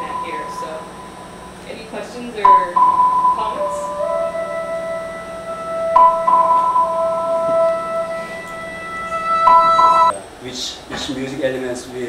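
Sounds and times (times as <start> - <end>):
held pure tones music: 0.0 - 10.2
higher tone: 0.0 - 10.3.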